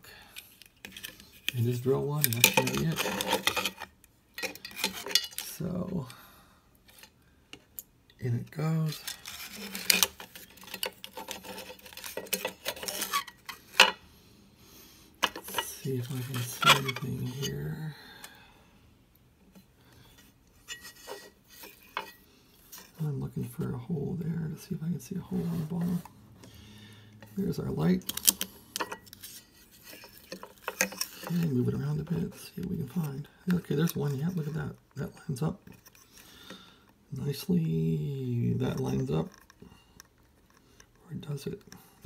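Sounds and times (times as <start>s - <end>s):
circuit board scraping metal chassis: 8.7s - 13.9s, 15.2s - 17.8s.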